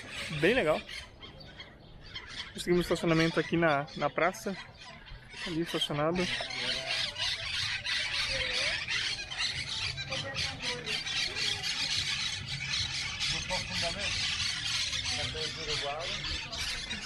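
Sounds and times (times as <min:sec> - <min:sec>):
parakeets squawking and chattering: 0:00.0 - 0:17.0.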